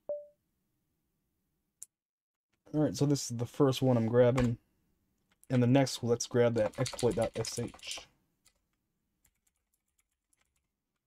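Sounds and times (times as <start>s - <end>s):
faint keyboard typing: 6.4s - 11.0s.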